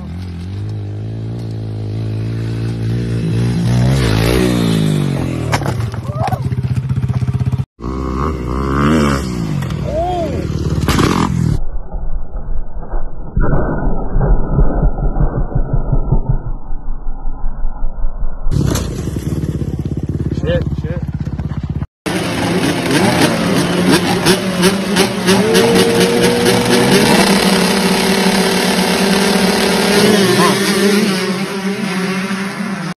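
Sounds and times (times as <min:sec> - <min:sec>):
dirt bike engines revving: 0:00.0 - 0:11.4, 0:18.5 - 0:33.0.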